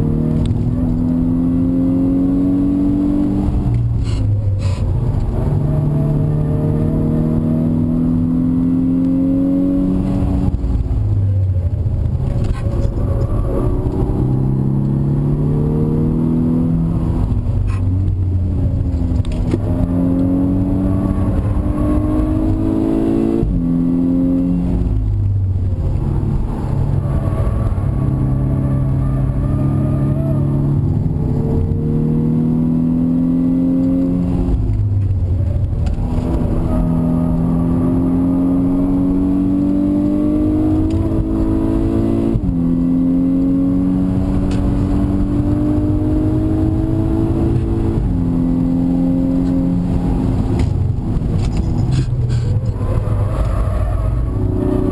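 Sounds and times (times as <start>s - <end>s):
car engine accelerating: 0.0s - 54.9s
road and wind noise: 0.0s - 54.9s.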